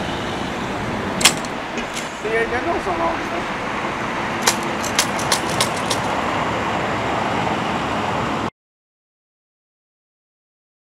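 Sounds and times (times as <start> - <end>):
vehicle engines running: 0.0 - 8.5.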